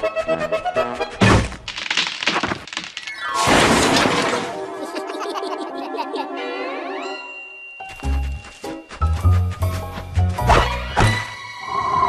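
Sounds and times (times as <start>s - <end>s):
cracking and snapping: 1.6s - 3.1s.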